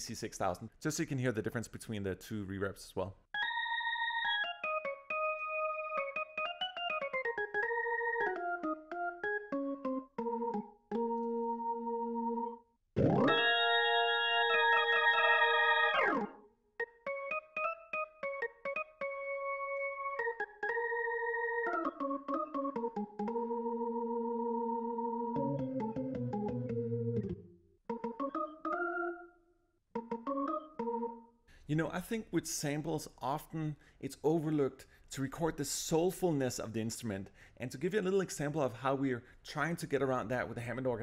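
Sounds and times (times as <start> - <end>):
organ through rotating speaker: 3.4 - 29.2.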